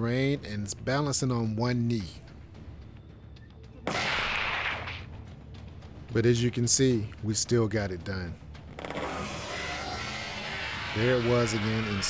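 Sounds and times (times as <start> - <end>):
rifle shot: 3.9 - 5.0.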